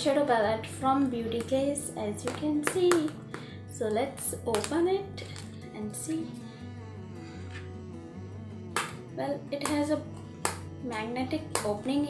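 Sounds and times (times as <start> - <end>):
music with steady bass line: 4.4 - 12.0
sharp snap: 8.7 - 9.0.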